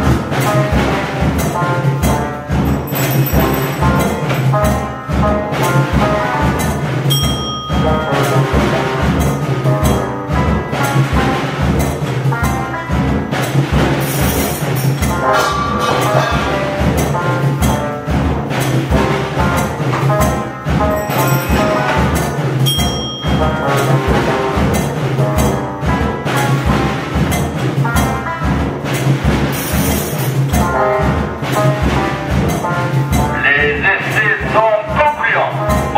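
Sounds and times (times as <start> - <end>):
tuned percussion: 0.0 - 6.0, 6.6 - 10.5, 13.4 - 35.0
cymbals: 0.0 - 35.9
drum strikes: 0.0 - 35.9.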